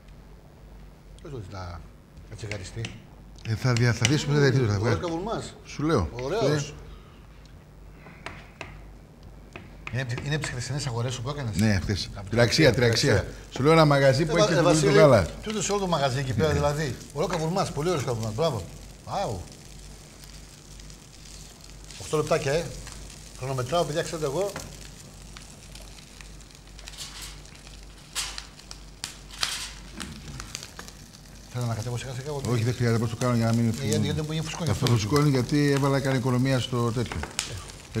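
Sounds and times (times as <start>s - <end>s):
people talking: 1.3s - 6.9s, 9.9s - 19.5s, 22.0s - 22.8s, 23.4s - 24.6s, 31.5s - 38.0s
meat sizzling in a pan: 10.0s - 38.0s.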